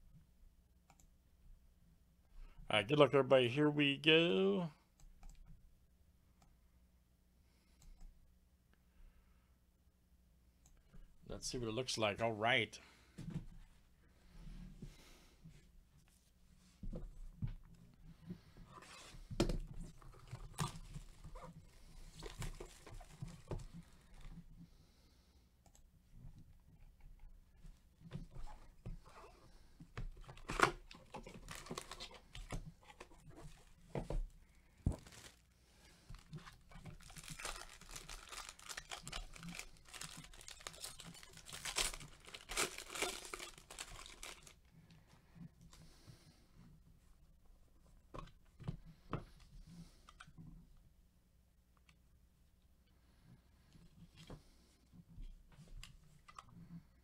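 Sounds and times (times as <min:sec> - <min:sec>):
foil wrapper tearing and crinkling: 0:36.8 - 0:44.6.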